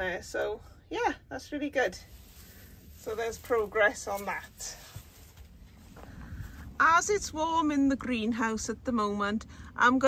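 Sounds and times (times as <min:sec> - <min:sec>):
woman speaking: 0:00.0 - 0:02.1, 0:03.0 - 0:04.9, 0:06.7 - 0:10.0.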